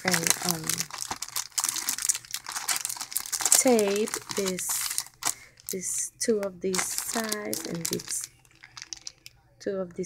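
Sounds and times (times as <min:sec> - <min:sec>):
plastic packaging crinkling: 0:00.0 - 0:06.0, 0:06.7 - 0:09.4.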